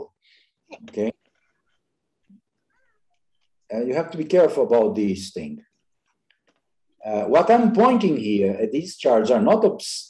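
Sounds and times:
man speaking: 0.8 - 1.3, 3.7 - 5.7, 6.9 - 10.0.

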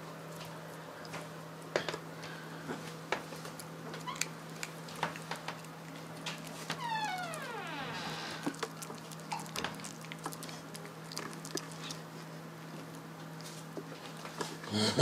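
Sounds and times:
steady low hum: 0.0 - 15.0
teeth clicking on a chew: 3.4 - 6.7, 8.4 - 12.1
puppy whining: 4.0 - 4.4.

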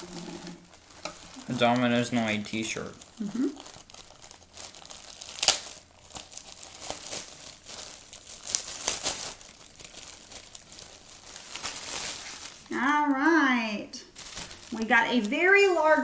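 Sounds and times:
plastic bag crinkling: 0.0 - 12.8, 14.1 - 16.0.

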